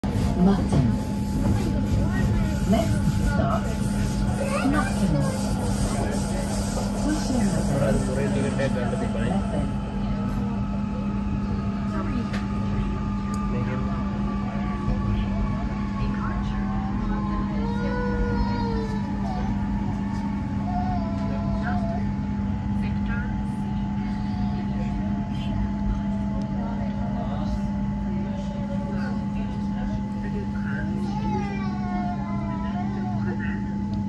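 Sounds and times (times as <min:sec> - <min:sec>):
faint voices: 0:00.0 - 0:34.0
train hum and rumble: 0:00.0 - 0:34.0.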